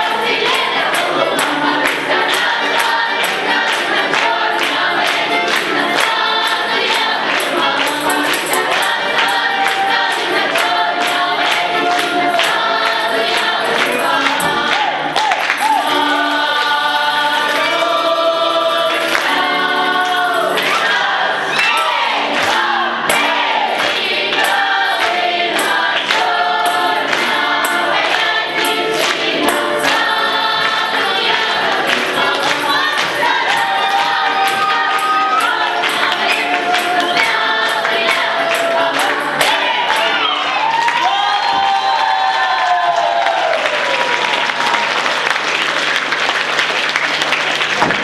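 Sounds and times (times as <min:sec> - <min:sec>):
accordion: 0:00.0 - 0:40.5
folk choir singing: 0:00.0 - 0:43.6.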